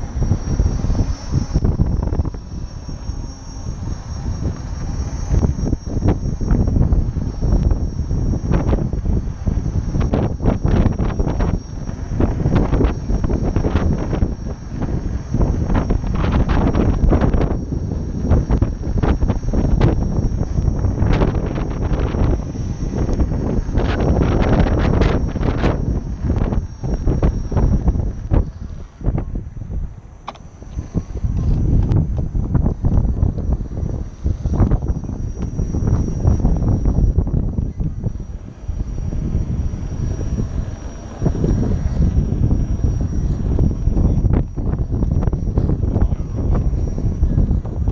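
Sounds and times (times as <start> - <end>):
wind buffeting microphone: 0.0 - 47.9.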